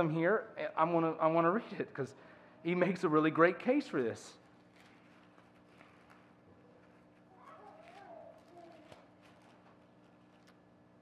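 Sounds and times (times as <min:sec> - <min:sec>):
paper pages turning: 0:04.4 - 0:10.7.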